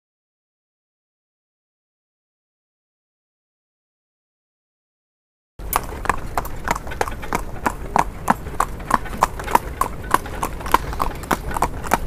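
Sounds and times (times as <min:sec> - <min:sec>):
horse hooves clip-clopping on asphalt: 0:05.6 - 0:12.0.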